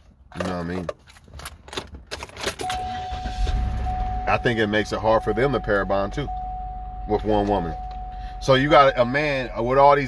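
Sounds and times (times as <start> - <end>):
steady electronic tone: 2.7 - 10.0.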